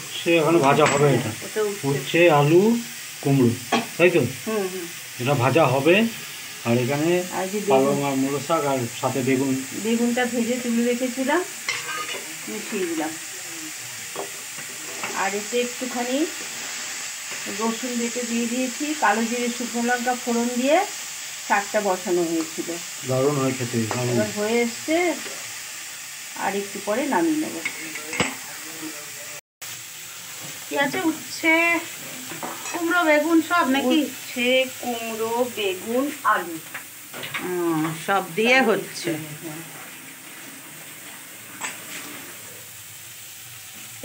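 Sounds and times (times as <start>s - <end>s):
vegetables sizzling in a pan: 0.0s - 44.0s
spatula stirring: 11.6s - 12.9s, 16.3s - 17.6s
metal spatula scraping a pan: 11.6s - 13.1s, 14.2s - 15.5s, 16.2s - 17.6s, 32.0s - 32.9s.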